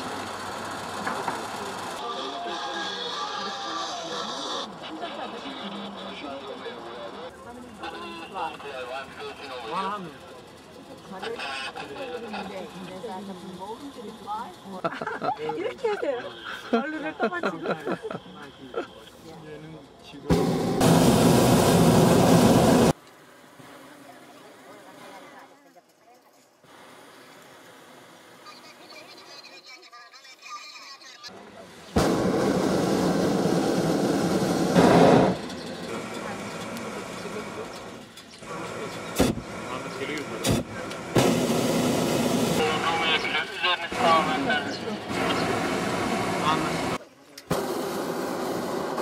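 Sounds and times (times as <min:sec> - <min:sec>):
voices: 0:00.0 - 0:20.5, 0:28.4 - 0:33.2, 0:34.8 - 0:47.6
propane burner blasts: 0:00.0 - 0:24.8, 0:31.4 - 0:49.0
propane burner blast: 0:20.2 - 0:23.8, 0:31.6 - 0:49.0.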